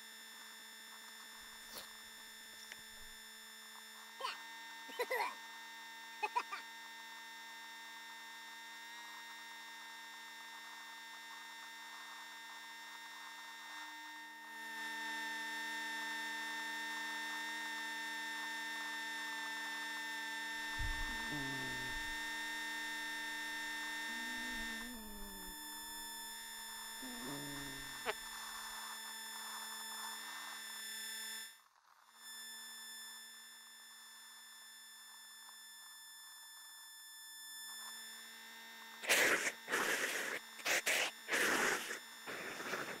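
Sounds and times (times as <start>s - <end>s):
steady electrical hum: 7.5s - 31.7s.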